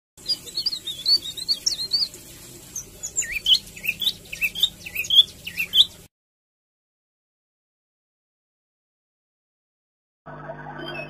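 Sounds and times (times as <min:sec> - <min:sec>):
bird singing: 0:00.2 - 0:06.1.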